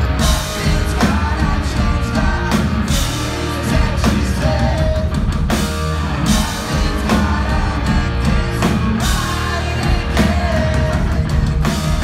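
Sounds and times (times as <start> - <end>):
live pop-punk band: 0.0 - 12.0
person singing: 6.2 - 12.0.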